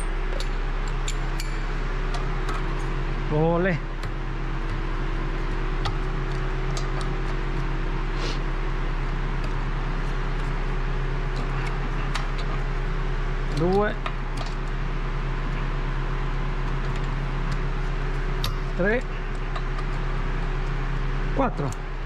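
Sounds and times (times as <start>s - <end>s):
radiator cooling fan running: 0.0s - 22.0s
wrench clicking on wheel bolts: 0.3s - 2.2s.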